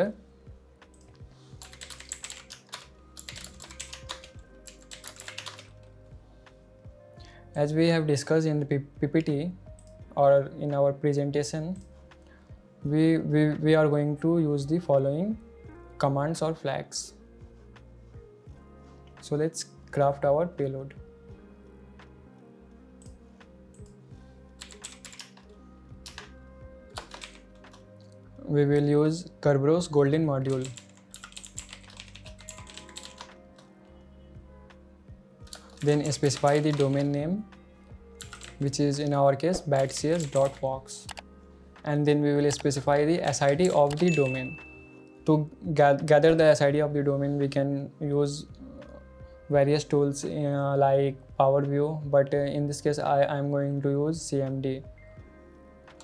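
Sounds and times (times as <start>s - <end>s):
soft background music: 0.0s - 56.0s
keyboard typing: 0.9s - 5.9s, 24.6s - 26.3s, 26.9s - 28.1s, 30.4s - 33.7s, 35.5s - 37.2s, 38.2s - 38.8s, 39.6s - 41.3s, 42.5s - 44.8s.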